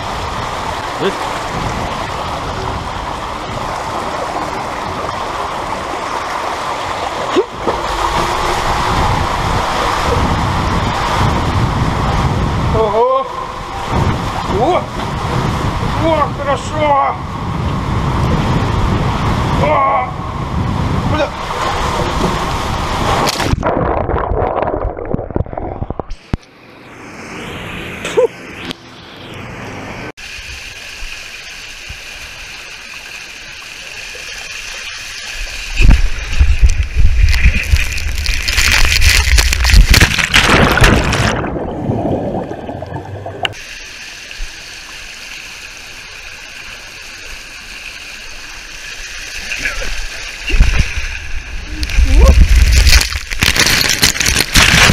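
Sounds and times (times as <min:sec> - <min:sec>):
water rushing down a water slide: 0:00.0 - 0:26.1, 0:30.2 - 0:54.9.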